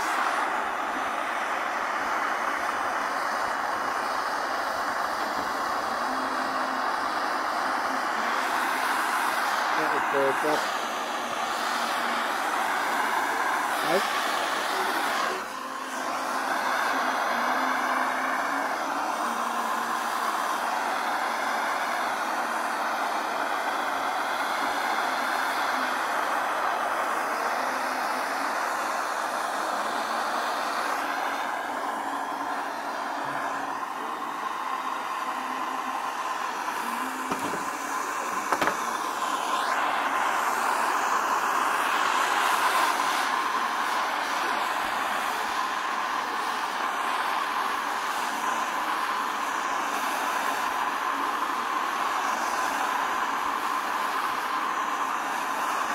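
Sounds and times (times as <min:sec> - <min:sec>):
gas torch hissing: 0:00.0 - 0:55.9.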